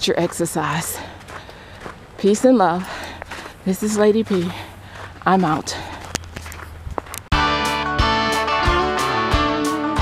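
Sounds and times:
footsteps on snow: 0.0 - 7.3
strummed acoustic guitar music: 7.3 - 10.0.

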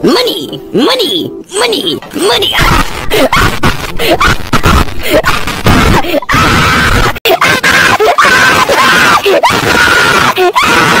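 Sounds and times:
cartoon character screaming: 2.2 - 11.0.

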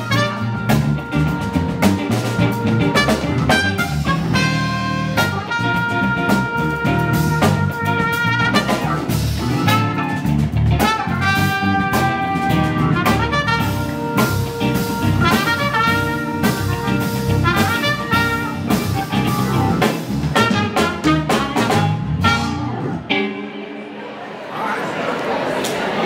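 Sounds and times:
trumpet melody: 0.0 - 23.3
drum kit: 0.0 - 23.4
electric bass: 0.0 - 23.5.

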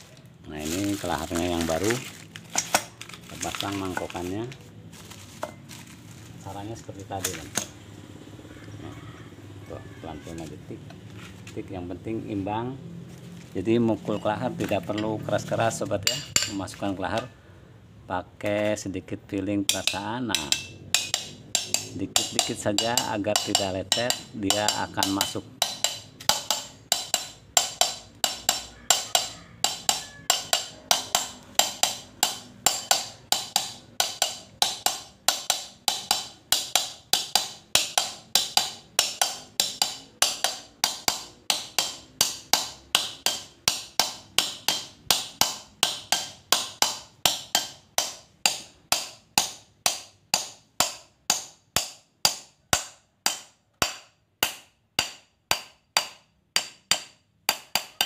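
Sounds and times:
hammer tapping steel punch: 7.2 - 7.8, 16.0 - 17.3, 19.7 - 58.0.

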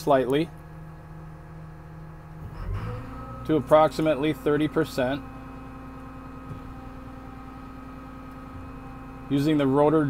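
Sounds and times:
hydraulics whirring: 0.0 - 10.0
machine hum: 0.0 - 10.0.

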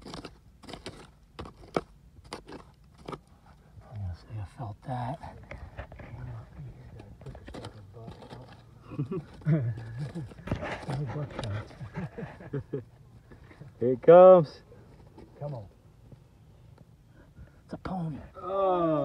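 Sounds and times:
crunching and scraping of digging: 0.0 - 17.1.

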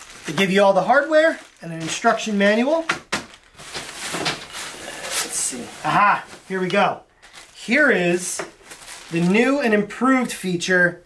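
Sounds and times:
plastic wrap rustling and crinkling: 0.0 - 10.3.

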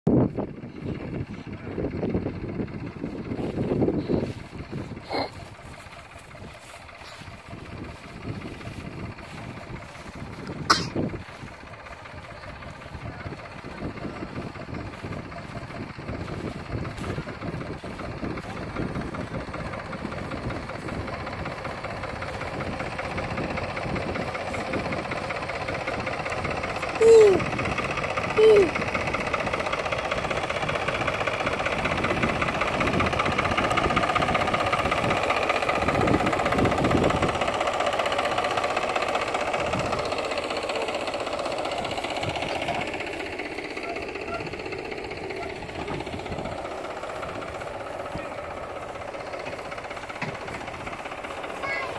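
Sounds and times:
tractor diesel engine: 0.1 - 51.9.

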